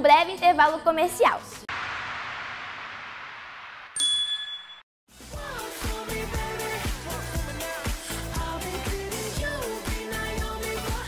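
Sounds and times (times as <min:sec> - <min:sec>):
high ding: 0:04.0 - 0:04.8
music with a beat: 0:05.2 - 0:11.0.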